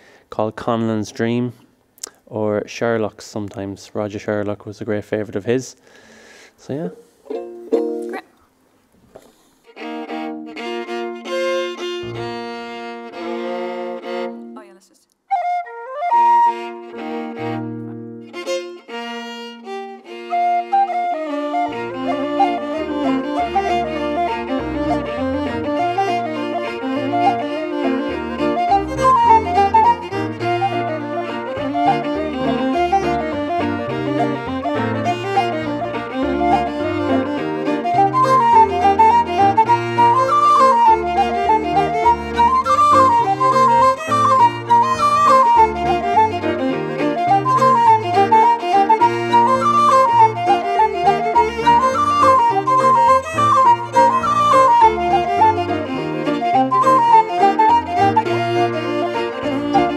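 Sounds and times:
fast fiddle and flute melody: 9.7s - 14.3s, 15.3s - 59.9s
held chords: 20.6s - 59.9s
piano bass notes: 21.5s - 59.9s.

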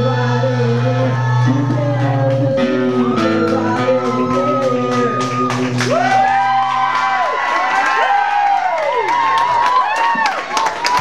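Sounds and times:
audience cheering: 2.6s - 11.0s
rising and falling whoops: 2.8s - 11.0s
audience clapping: 3.4s - 11.0s.

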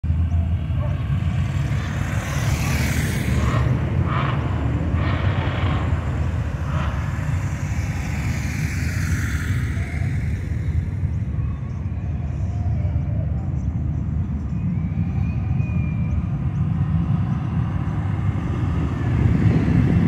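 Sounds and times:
steady low rumble: 0.0s - 20.0s
motorcycles riding past: 0.1s - 12.0s.

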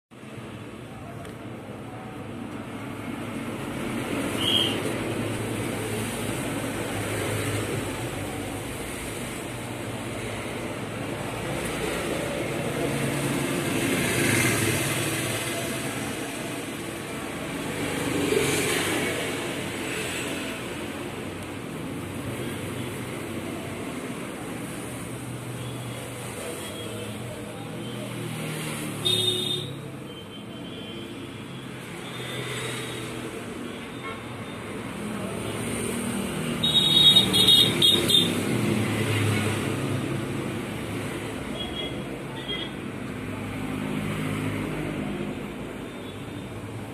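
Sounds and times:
road traffic passing: 0.1s - 46.9s.

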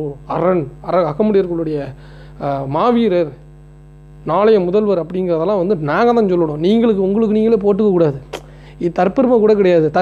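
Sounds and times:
man speaking: 0.0s - 3.4s, 4.2s - 10.0s
steady electrical hum: 0.0s - 10.0s.

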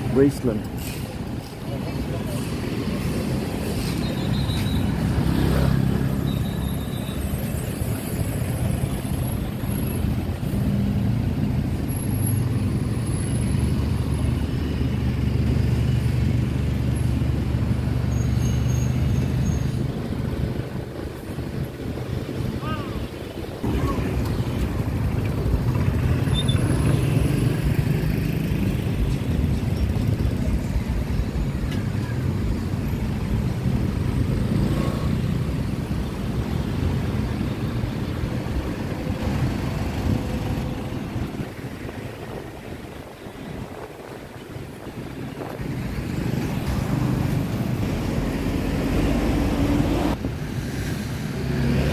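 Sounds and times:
road traffic passing: 0.0s - 51.9s.

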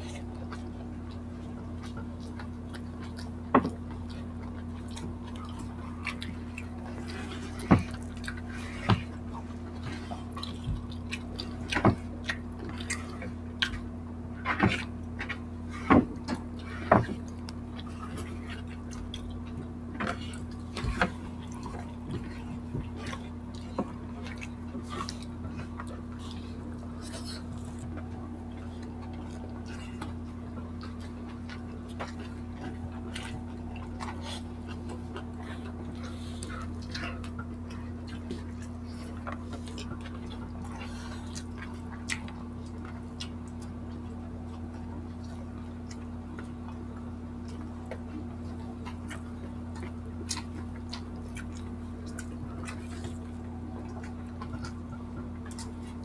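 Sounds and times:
soft chewing: 0.0s - 56.0s
steady low hum: 0.0s - 56.0s.

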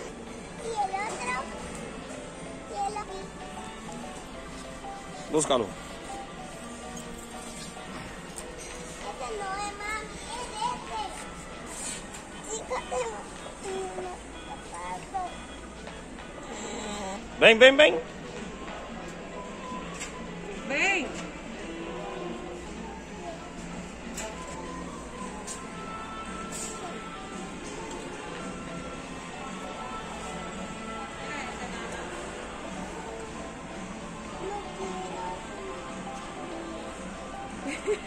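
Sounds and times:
background music with held tones: 0.0s - 38.0s.

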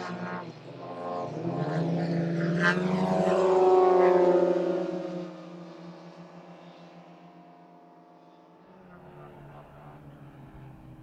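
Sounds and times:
propeller planes passing overhead: 0.0s - 11.0s.

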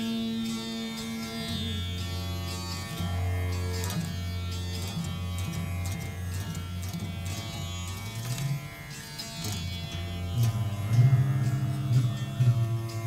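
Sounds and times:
plucked stringed instrument with deep drones: 0.0s - 13.0s.

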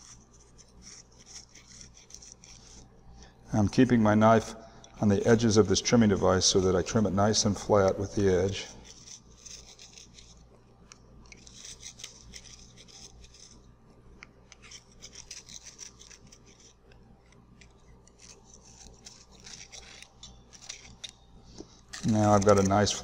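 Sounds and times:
knife scraping soil: 0.0s - 3.0s, 7.5s - 10.4s, 11.3s - 13.6s, 14.5s - 21.2s, 21.8s - 23.0s.

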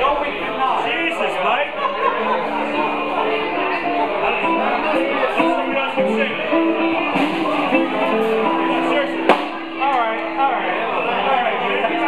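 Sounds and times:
people talking: 0.0s - 12.0s
electric guitars playing: 1.9s - 12.0s.

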